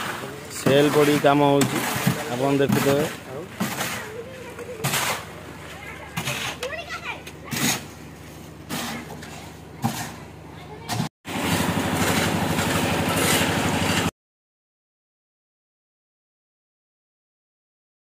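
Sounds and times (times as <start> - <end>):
workers' voices: 0.0 - 11.1
concrete mixer engine running: 0.0 - 14.1.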